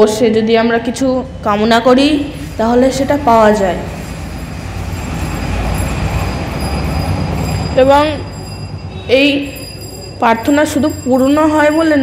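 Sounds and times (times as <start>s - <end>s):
loud rumbling: 1.2s - 9.1s.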